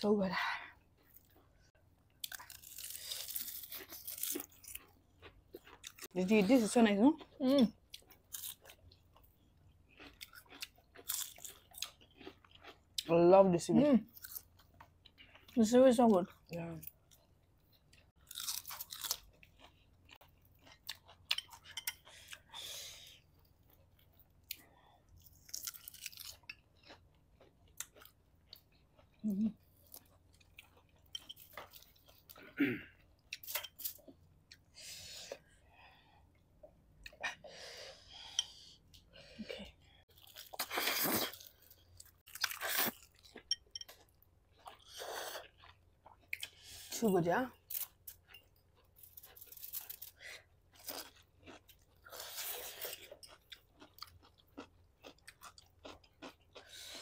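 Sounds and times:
people chewing and crunching: 0.3 - 57.0.

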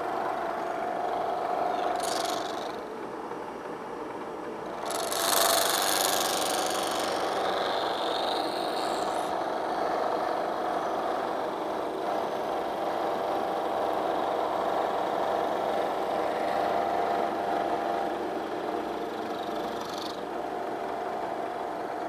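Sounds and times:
milling machine cutting metal: 0.0 - 2.8, 4.7 - 22.0.

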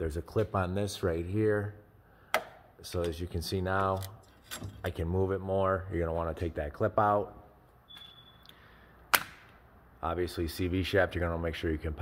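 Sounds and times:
metal clip squeaking: 7.9 - 8.5.

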